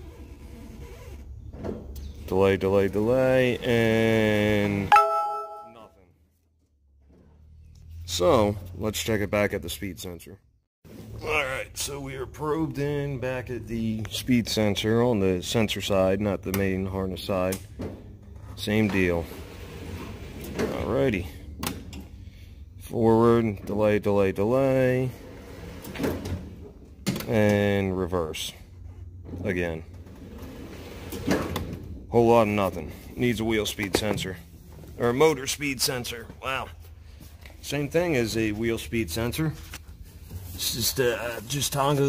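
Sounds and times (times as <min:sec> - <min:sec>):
man speaking: 0:02.6 - 0:06.0, 0:11.2 - 0:17.3, 0:40.6 - 0:42.0
brief ringing tone: 0:04.9 - 0:05.9.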